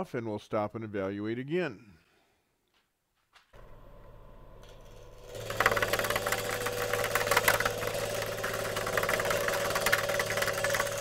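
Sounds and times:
faint thin motor whine: 0:03.6 - 0:11.0
lathe motor humming: 0:03.6 - 0:11.0.

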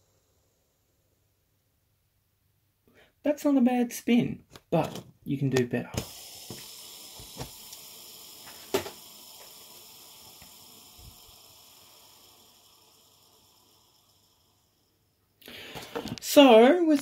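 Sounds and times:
toy train wheels whirring: 0:06.0 - 0:17.0.

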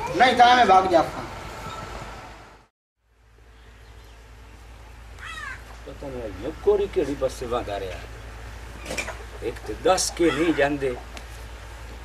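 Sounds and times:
bird call: 0:05.2 - 0:05.8.

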